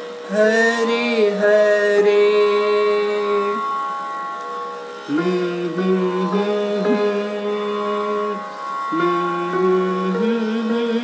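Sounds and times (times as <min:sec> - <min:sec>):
electronic keyboard sustained note: 0:00.0 - 0:11.0.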